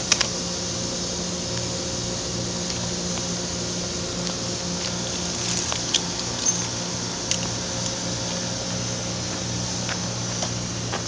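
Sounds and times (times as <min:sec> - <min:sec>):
machine hum and hiss: 0:00.0 - 0:11.0.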